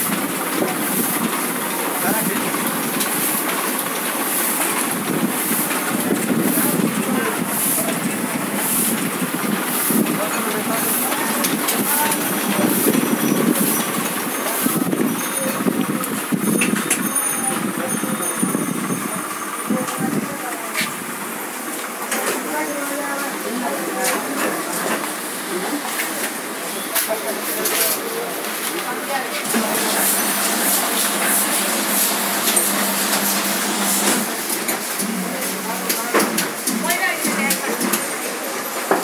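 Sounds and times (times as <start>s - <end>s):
printing press hiss: 0.0s - 39.0s
printing press running: 0.0s - 39.0s.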